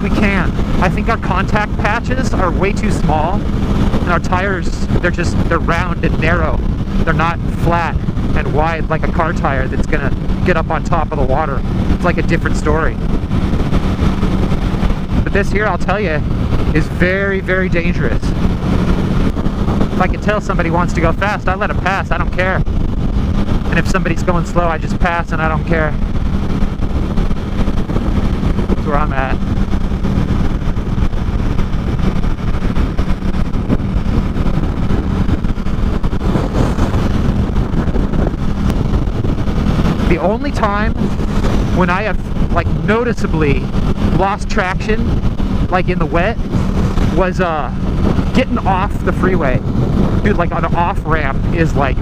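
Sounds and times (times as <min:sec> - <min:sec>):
motorcycle engine drone: 0:00.0 - 0:52.0
wind noise over microphone: 0:00.0 - 0:52.0.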